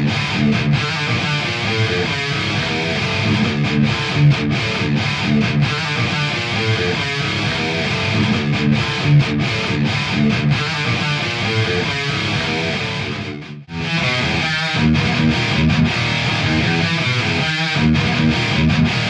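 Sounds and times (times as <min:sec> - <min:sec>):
distorted electric guitar riff: 0:00.0 - 0:19.0.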